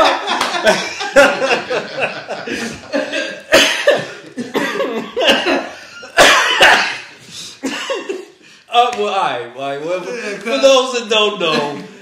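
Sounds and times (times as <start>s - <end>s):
man laughing: 0.0s - 6.2s
man coughing: 2.6s - 8.4s.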